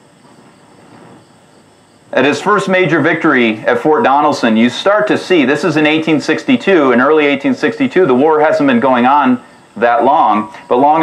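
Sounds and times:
faint steady hiss: 0:00.0 - 0:11.0
thin high tones: 0:05.3 - 0:11.0.

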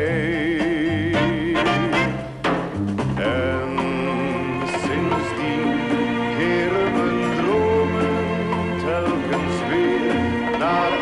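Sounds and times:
man singing with vibrato: 0:00.0 - 0:02.3, 0:03.2 - 0:11.0
orchestra with walking bass: 0:00.0 - 0:11.0.

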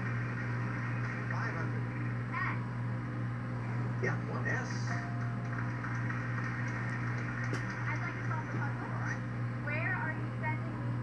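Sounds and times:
steady low hum: 0:00.0 - 0:11.0
faint television voices: 0:00.3 - 0:02.7, 0:03.9 - 0:11.0.

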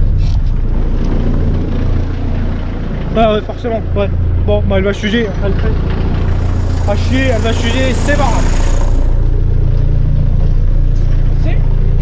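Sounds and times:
diesel truck engine rumbling: 0:00.0 - 0:12.0.

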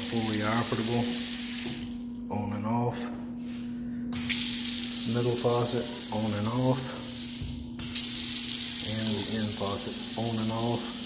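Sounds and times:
faucet water running into basin: 0:00.0 - 0:02.0, 0:04.2 - 0:11.0
steady low hum: 0:00.0 - 0:11.0.

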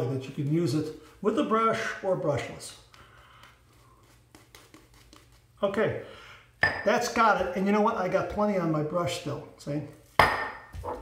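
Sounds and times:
shaving brush on stubble: 0:03.1 - 0:05.6.

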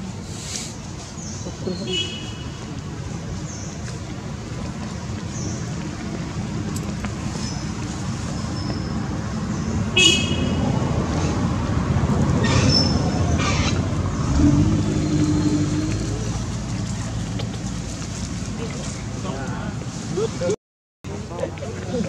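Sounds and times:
road traffic rumbling: 0:00.0 - 0:22.0
passing vehicle hum: 0:09.0 - 0:20.3.

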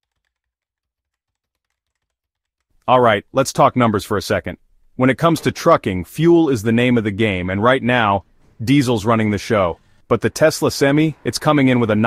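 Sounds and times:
faint rapid clicking: 0:00.0 - 0:02.9.

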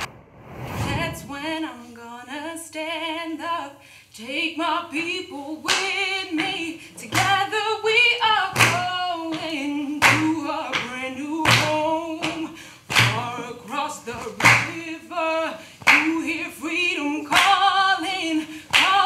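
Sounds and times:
woman singing unaccompanied: 0:01.1 - 0:19.0
sharp hand claps: 0:05.7 - 0:07.4, 0:08.5 - 0:13.3, 0:14.2 - 0:14.8, 0:15.8 - 0:16.2, 0:17.3 - 0:17.6, 0:18.7 - 0:19.0.

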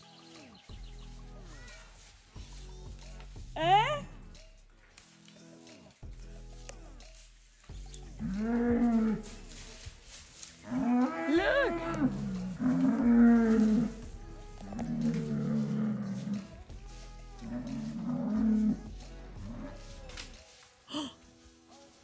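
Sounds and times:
bulls bellowing: 0:07.9 - 0:20.4.

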